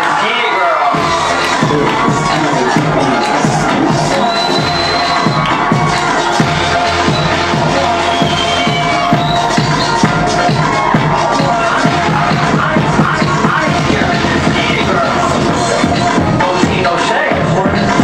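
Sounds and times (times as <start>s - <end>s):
crowd cheering: 0.0s - 18.0s
electronic dance music: 0.0s - 18.0s.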